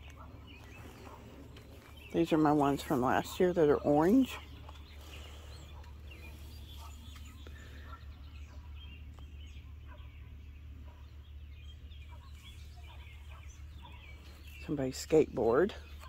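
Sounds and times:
bird calls and chirps: 0:00.0 - 0:16.0
steady low hum: 0:00.0 - 0:16.0.

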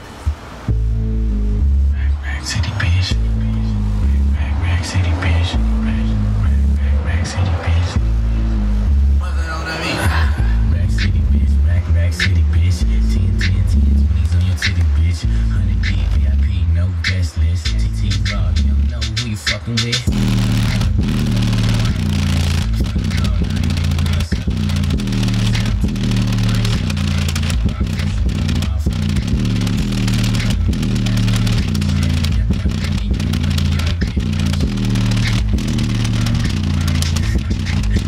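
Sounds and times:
heavy bass line: 0:00.0 - 0:38.0
rap music through subwoofer: 0:00.0 - 0:38.0.

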